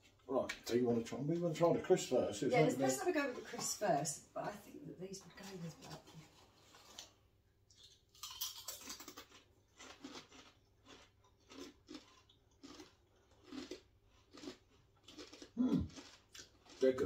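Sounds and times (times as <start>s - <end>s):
crisps crunched and chewed: 5.5s - 17.0s.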